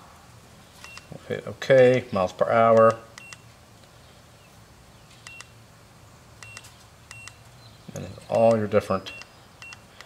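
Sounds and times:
short high-pitched beeps: 0.8 - 1.1, 3.2 - 3.4, 5.3 - 5.5, 6.4 - 7.4, 9.0 - 9.8.

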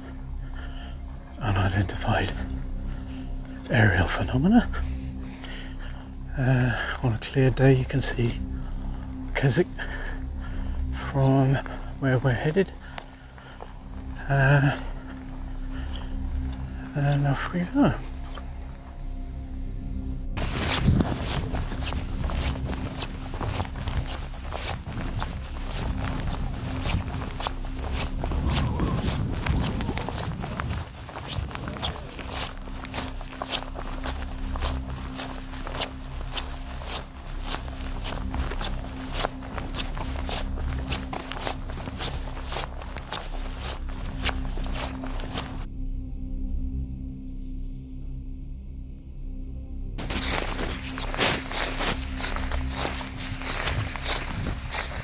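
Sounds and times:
crunching footsteps: 0.0 - 19.6, 20.4 - 45.7, 50.0 - 55.0
low music drone: 0.0 - 55.0.

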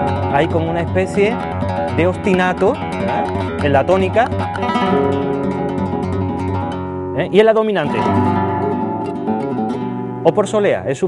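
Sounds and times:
flamenco guitar chord ringing: 0.0 - 11.0.

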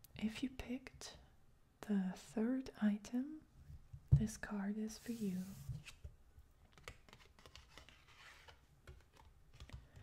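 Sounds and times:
card being handled: 6.7 - 9.9.

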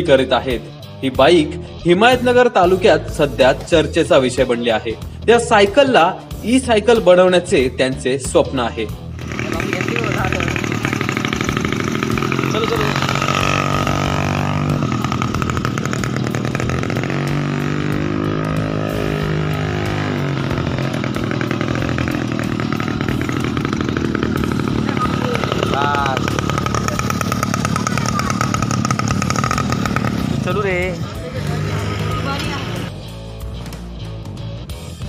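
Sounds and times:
small petrol engine running: 9.2 - 32.9
people's voices: 24.6 - 32.9.

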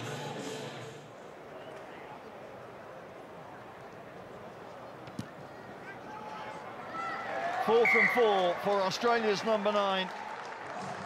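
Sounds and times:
stadium ambience: 0.0 - 11.0.

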